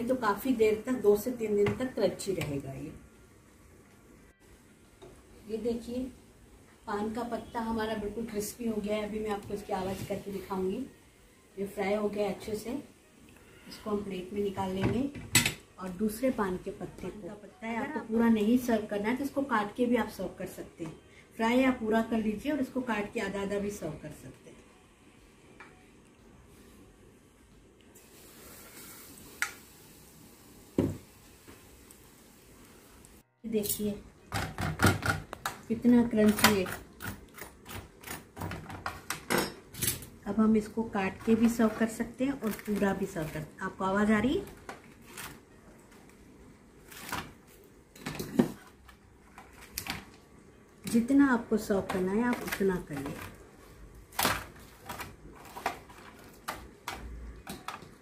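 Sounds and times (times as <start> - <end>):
leaf deep-frying in oil: 27.9 - 33.6.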